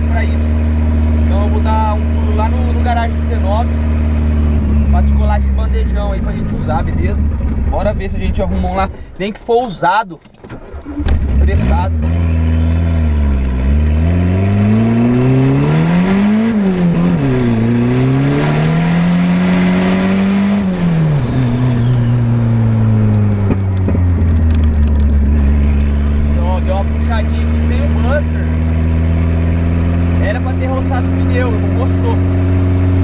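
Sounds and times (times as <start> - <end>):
car engine revving: 0.0 - 9.1, 10.6 - 33.0.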